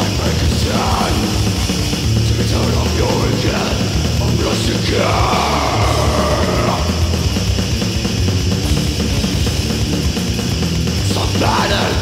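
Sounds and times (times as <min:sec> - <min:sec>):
distorted guitars and bass: 0:00.0 - 0:12.0
fast dense drumming: 0:00.0 - 0:12.0.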